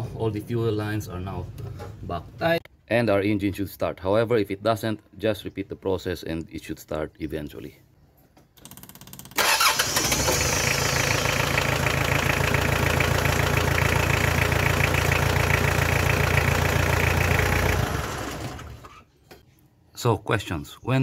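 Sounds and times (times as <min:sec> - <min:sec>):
diesel engine starting and idling: 0:09.3 - 0:18.9.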